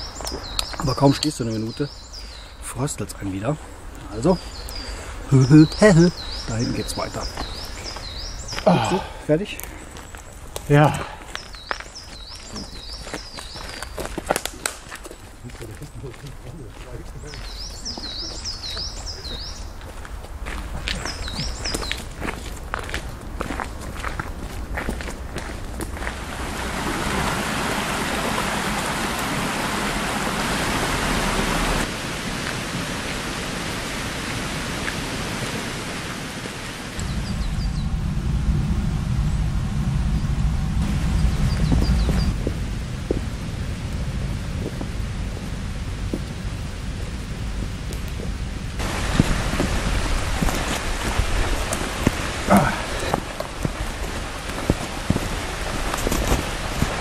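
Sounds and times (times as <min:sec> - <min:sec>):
footsteps on forest path: 0:00.0 - 0:02.4, 0:03.6 - 0:29.3, 0:41.2 - 0:43.4, 0:47.4 - 0:57.0
wind rumbling on microphone: 0:00.0 - 0:57.0
wind rushing: 0:25.9 - 0:57.0.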